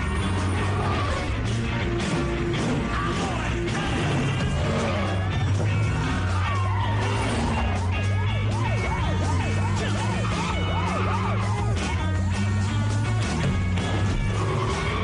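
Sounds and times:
car engine drone: 0:00.0 - 0:15.0
police siren yelping: 0:05.7 - 0:13.0.

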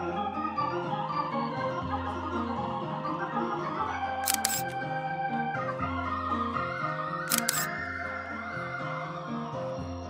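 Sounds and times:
sharp clicks: 0:04.3 - 0:04.8, 0:07.3 - 0:07.7.

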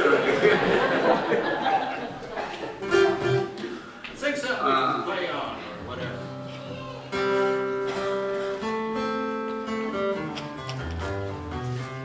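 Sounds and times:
acoustic guitar chords ringing: 0:02.8 - 0:03.6.

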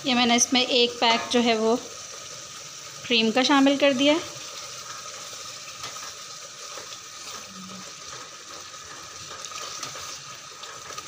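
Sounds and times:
curry bubbling in a pan: 0:00.0 - 0:11.0
spatula stirring: 0:04.5 - 0:11.0.

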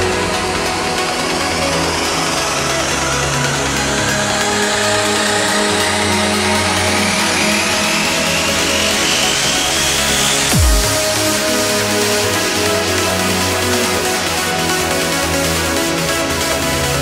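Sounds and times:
held synth chords: 0:00.0 - 0:17.0
synth bass: 0:00.0 - 0:17.0.

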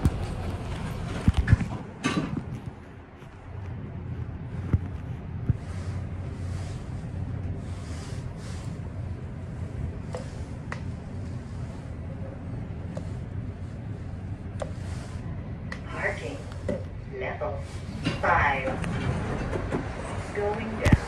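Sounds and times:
elevator car humming: 0:00.0 - 0:21.0.

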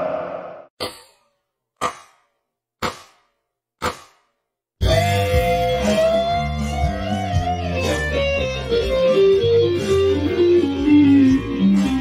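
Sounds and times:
electric guitar lick: 0:04.8 - 0:12.0.

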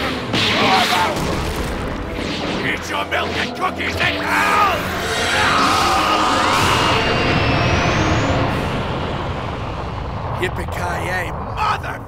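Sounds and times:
thin rising whine: 0:04.6 - 0:10.8
rumbling roar sound effect: 0:04.6 - 0:11.6.

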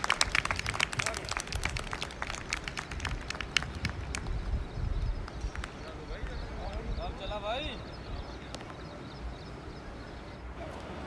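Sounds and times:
people clapping: 0:00.0 - 0:06.9
wind rumble on microphone: 0:00.0 - 0:11.0.

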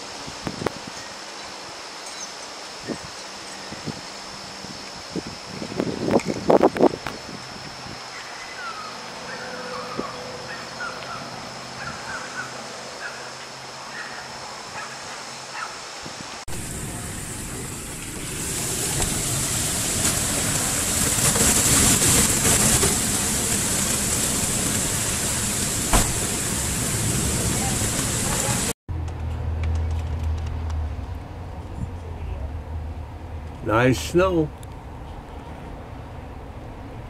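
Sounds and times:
heavy wind-driven rain: 0:00.0 - 0:28.8.

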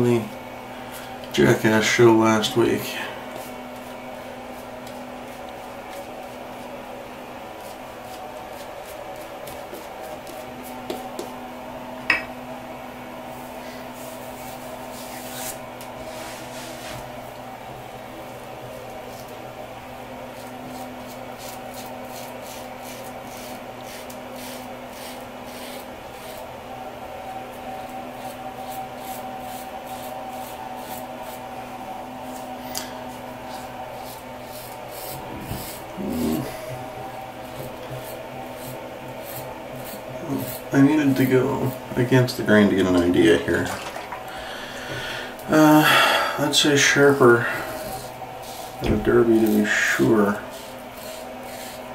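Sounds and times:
steady low hum: 0:00.0 - 0:51.9
razor scraping stubble: 0:00.9 - 0:06.8, 0:07.5 - 0:11.2, 0:14.0 - 0:17.1, 0:19.0 - 0:19.4, 0:20.2 - 0:26.5, 0:27.3 - 0:43.8, 0:46.4 - 0:51.9.

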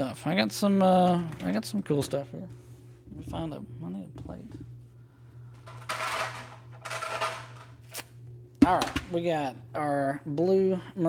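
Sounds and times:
steady low hum: 0:00.0 - 0:11.0
objects rustling and clattering: 0:05.5 - 0:08.0.

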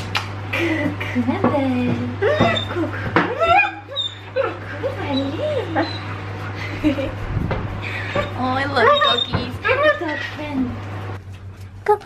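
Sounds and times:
dog whining: 0:02.2 - 0:06.4, 0:08.0 - 0:10.6.

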